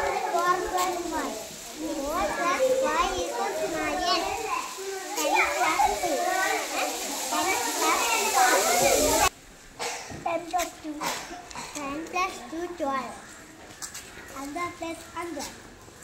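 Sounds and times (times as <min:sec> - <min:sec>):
young children chattering: 0:00.0 - 0:16.0.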